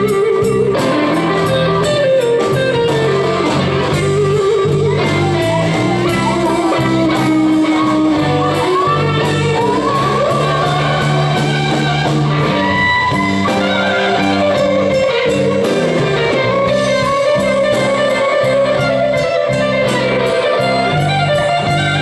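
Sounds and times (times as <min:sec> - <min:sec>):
bass and drums: 0:00.0 - 0:22.0
electric guitar lead: 0:00.0 - 0:22.0.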